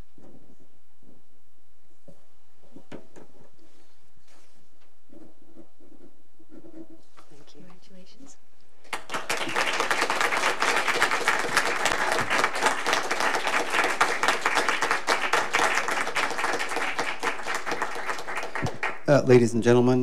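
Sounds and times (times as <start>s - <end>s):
crowd applauding: 8.9s - 19.5s.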